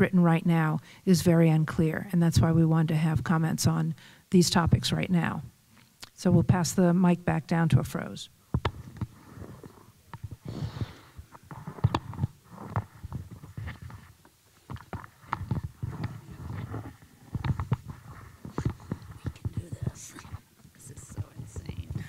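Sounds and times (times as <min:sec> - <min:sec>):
microphone handling knocks and rubbing: 0:02.3 - 0:03.8, 0:04.5 - 0:05.4, 0:06.2 - 0:06.9, 0:07.6 - 0:22.0.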